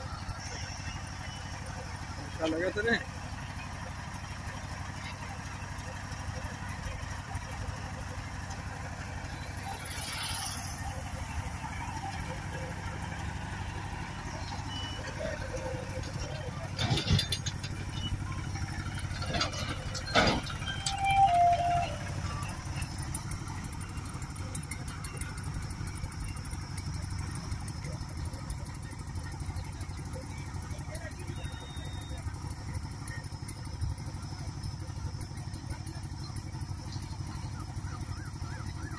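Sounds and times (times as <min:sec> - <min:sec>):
vehicle engine humming: 0:00.0 - 0:38.9.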